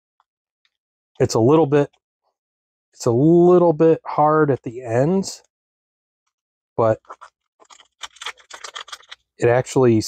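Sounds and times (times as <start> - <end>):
foil pouch crinkling: 7.0 - 9.3.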